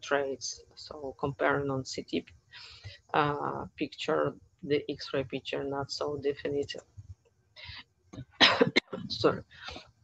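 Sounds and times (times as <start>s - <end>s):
faint breath: 2.5s - 3.1s
woman coughing: 8.4s - 9.0s.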